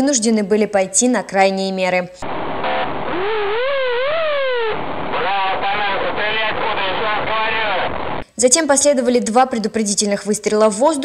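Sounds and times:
man speaking over loudspeaker: 5.2 - 7.9.

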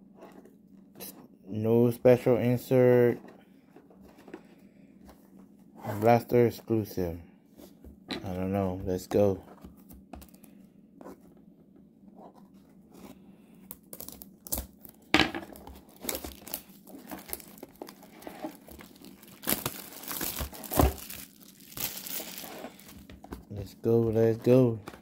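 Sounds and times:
plastic shrink-wrap tearing: 13.9 - 15.0, 15.9 - 23.0.

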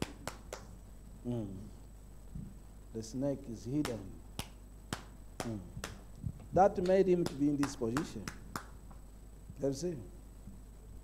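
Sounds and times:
finger snaps: 0.0 - 0.7, 3.8 - 9.1
man humming: 1.2 - 1.8, 5.4 - 6.0.

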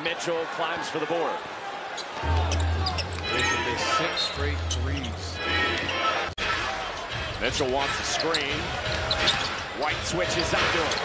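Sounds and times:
crowd noise hum: 1.4 - 11.0
shoe squeaks and knocks: 2.3 - 3.8, 7.9 - 9.8.

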